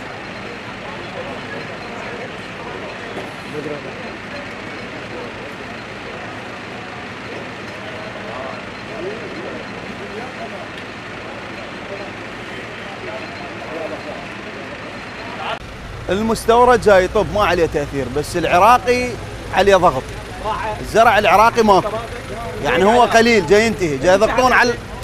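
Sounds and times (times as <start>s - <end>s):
vehicle noise: 0.0s - 25.0s.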